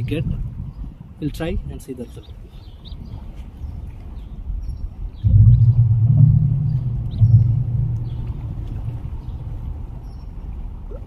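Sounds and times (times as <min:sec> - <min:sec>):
loud low rumble: 0:05.2 - 0:10.4.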